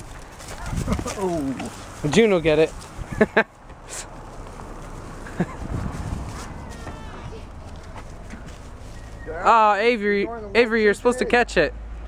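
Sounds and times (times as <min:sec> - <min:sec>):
distant voices: 0:00.0 - 0:11.8
outdoor hush: 0:00.0 - 0:12.0
person calling out: 0:06.4 - 0:07.6.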